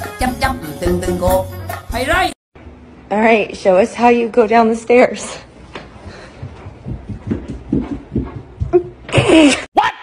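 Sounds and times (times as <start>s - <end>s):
dog paws thudding on carpeted stairs: 6.1s - 9.5s.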